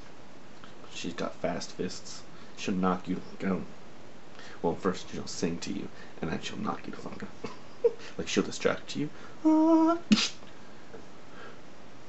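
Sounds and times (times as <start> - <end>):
man making mouth punch noise: 10.0 - 10.4.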